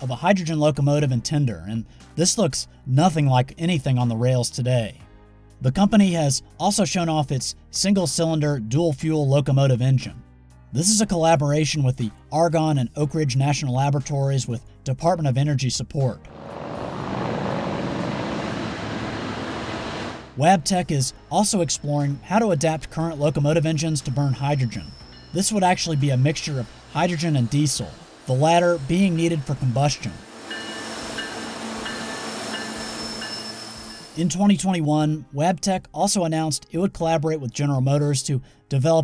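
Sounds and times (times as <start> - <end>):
heavy engine rumbling: 16.3 - 20.4
wheels squealing on rails: 16.3 - 20.4, 23.4 - 34.3
freight train rolling past: 16.3 - 22.2, 24.6 - 34.4.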